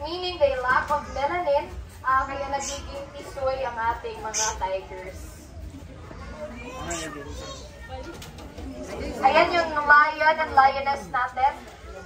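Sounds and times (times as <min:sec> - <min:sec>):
people talking: 0:00.0 - 0:05.3
children's voices: 0:05.8 - 0:08.4.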